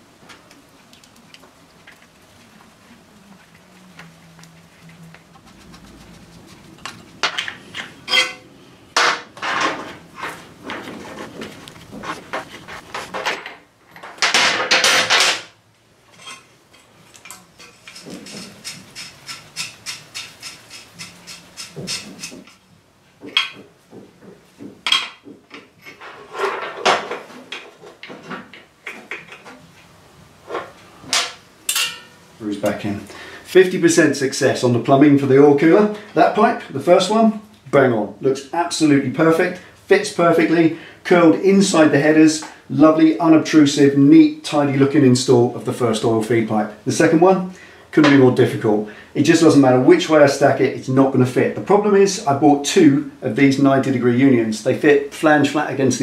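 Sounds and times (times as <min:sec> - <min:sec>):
rasping sound: 0:03.1 - 0:08.4, 0:17.6 - 0:22.6
metal fittings clinking and scraping: 0:06.8 - 0:08.4, 0:16.1 - 0:22.6.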